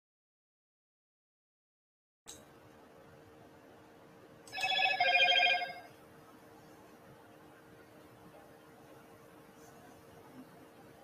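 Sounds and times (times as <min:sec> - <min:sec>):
faint steady hum: 0:02.3 - 0:11.0
electronic ringing tone: 0:04.5 - 0:05.9.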